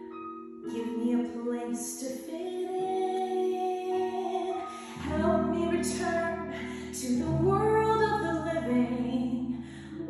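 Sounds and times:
woman singing a show tune: 0.7s - 9.6s.

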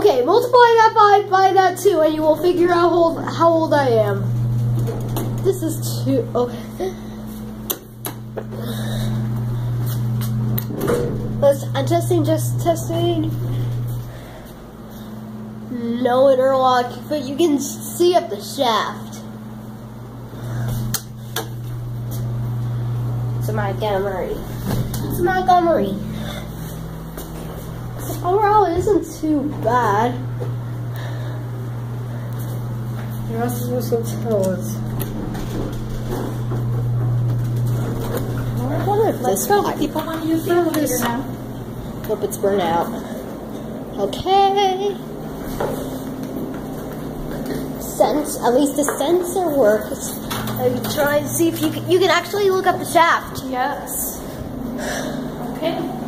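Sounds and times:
elevator electrical hum: 0.0s - 56.0s
footsteps on tile floor: 26.4s - 28.8s, 45.4s - 47.8s.

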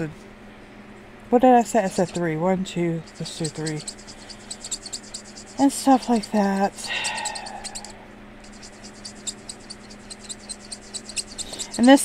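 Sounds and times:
marker scribbling on paper: 1.6s - 2.3s, 3.0s - 7.9s, 8.5s - 12.0s.

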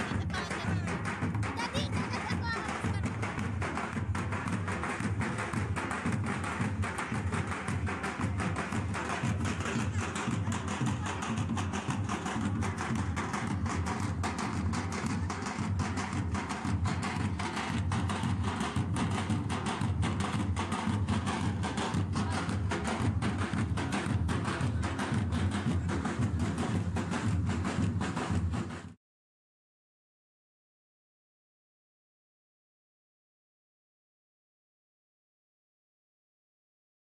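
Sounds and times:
drums beaten with sticks: 0.0s - 29.0s.

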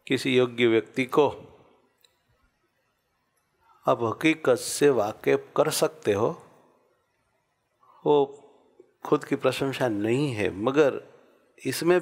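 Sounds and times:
man speaking: 0.0s - 1.6s, 3.8s - 6.5s, 8.0s - 12.0s.

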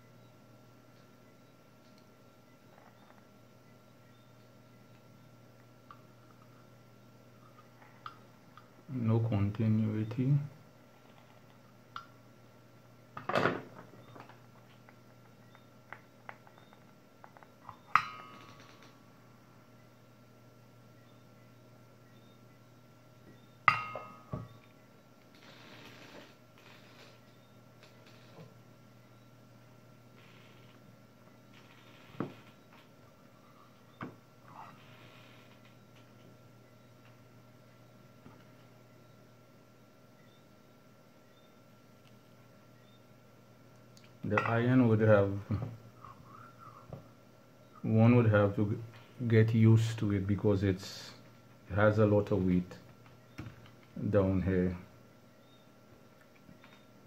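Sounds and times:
faint steady hum: 0.0s - 57.0s.

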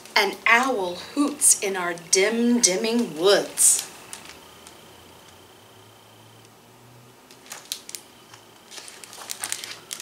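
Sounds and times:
book page turning: 7.3s - 10.0s.

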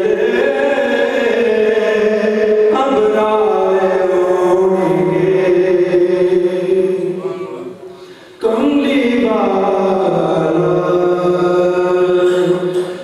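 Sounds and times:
man chanting into microphone: 0.0s - 13.0s.

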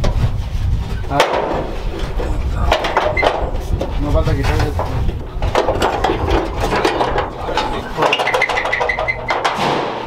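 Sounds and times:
tools and sheet metal rattling: 0.0s - 10.0s.

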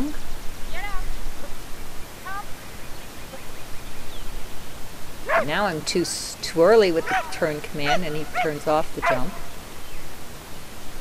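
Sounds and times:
steady outdoor hiss: 0.0s - 11.0s
woman calling commands: 5.3s - 9.4s.

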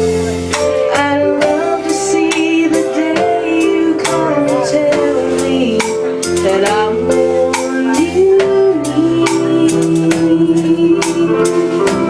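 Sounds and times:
live instrumental backing: 0.0s - 12.0s
woman singing into microphone: 0.6s - 12.0s.

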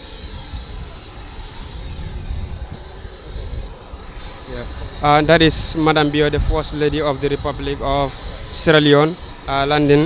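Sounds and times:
jet turbine rumble and whine: 0.0s - 10.0s.

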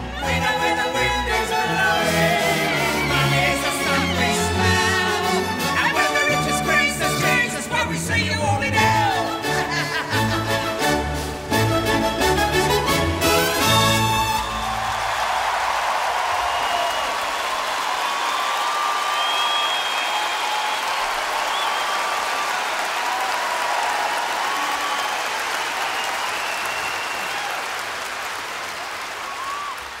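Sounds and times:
audience applauding and cheering: 0.0s - 7.4s, 12.2s - 30.0s
whistles: 18.1s - 22.4s, 24.6s - 27.6s, 29.2s - 29.9s.

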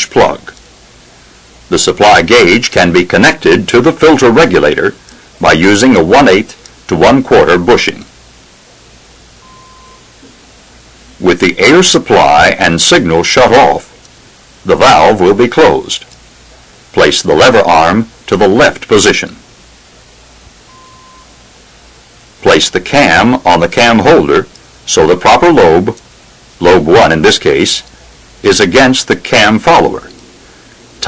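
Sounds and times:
recording hiss: 0.0s - 31.0s
faint beep-like tone: 9.4s - 10.1s, 20.7s - 21.4s.

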